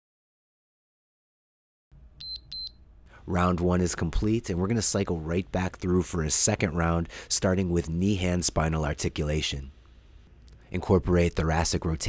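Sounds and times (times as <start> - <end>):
short high electronic beeps: 2.2 - 2.8.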